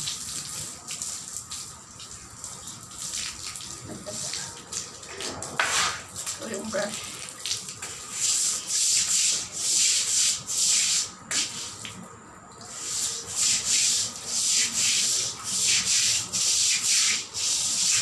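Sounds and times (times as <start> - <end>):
brush scrubbing wet floor tiles: 3.9 - 4.6, 7.8 - 12.0, 12.6 - 18.0.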